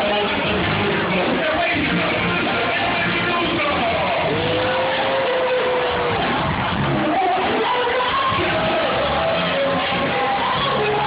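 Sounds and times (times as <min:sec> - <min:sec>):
live band music in a hall: 0:00.0 - 0:11.0.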